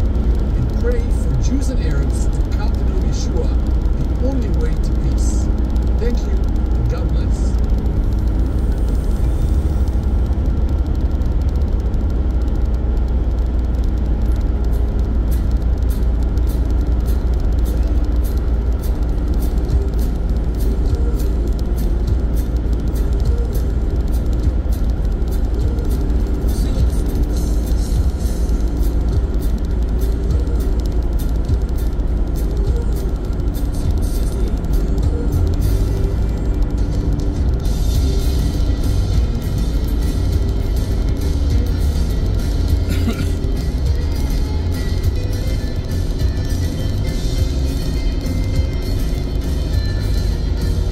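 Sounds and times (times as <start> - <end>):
background music: 0.0 - 50.9
car road and engine rumble: 0.0 - 50.9.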